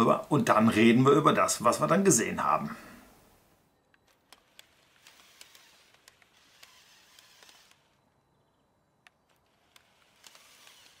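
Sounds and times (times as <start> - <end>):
soft clicks: 3.8 - 8.1, 9.0 - 11.0.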